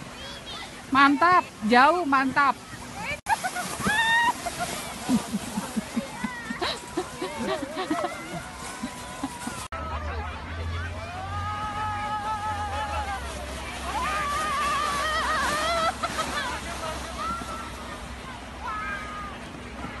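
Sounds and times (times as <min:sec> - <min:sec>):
people shouting and squealing: 0:03.4 - 0:04.8, 0:07.8 - 0:16.0.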